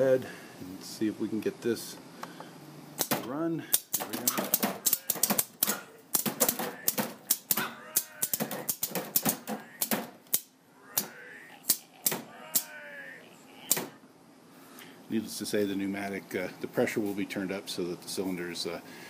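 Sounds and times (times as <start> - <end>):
wavering voice-like groans: 4.1 - 8.8, 9.5 - 10.0, 10.7 - 14.0.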